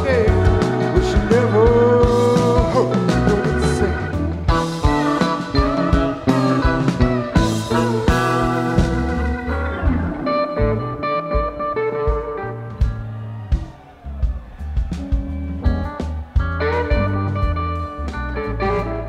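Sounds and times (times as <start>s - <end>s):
bass guitar: 0.0s - 19.0s
drums: 0.0s - 19.0s
electric guitar: 0.0s - 19.0s
keyboards: 0.0s - 19.0s.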